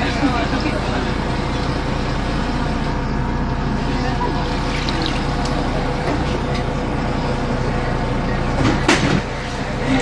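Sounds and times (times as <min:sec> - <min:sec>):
bus engine running: 0:00.0 - 0:10.0
water sloshing: 0:04.3 - 0:06.4.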